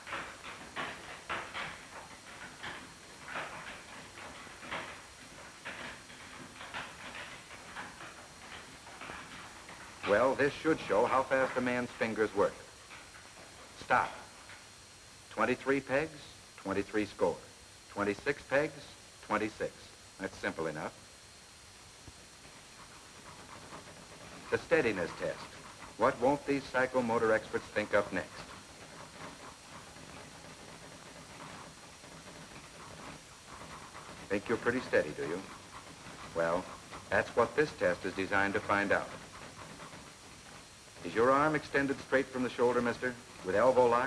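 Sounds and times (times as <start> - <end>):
film soundtrack hiss: 0.0 - 44.0.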